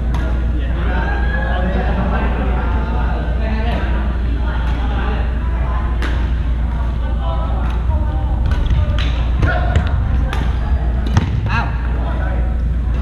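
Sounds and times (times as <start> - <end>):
distant voices: 0.0 - 13.0
steady low rumble: 0.0 - 13.0.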